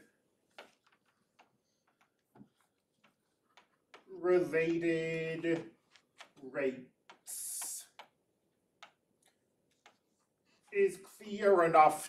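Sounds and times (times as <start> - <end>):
stylus tapping on tablet screen: 0.5 - 4.8, 7.0 - 10.2.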